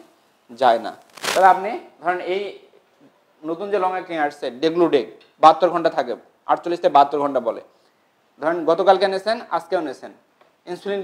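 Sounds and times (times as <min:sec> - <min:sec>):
man lecturing: 0:00.5 - 0:02.7, 0:03.4 - 0:07.8, 0:08.4 - 0:11.0.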